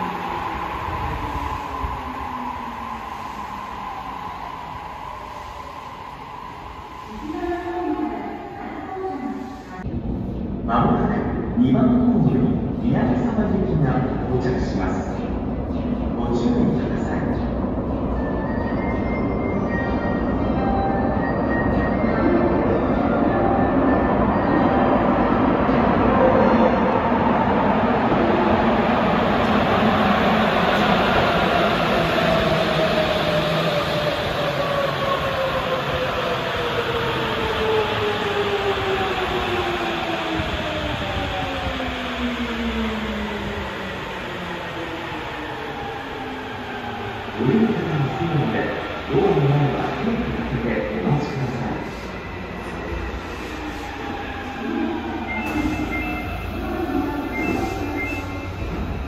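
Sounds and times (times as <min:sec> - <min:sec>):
train braking: 0:51.4 - 0:59.0
high door beeping: 0:55.1 - 0:59.0.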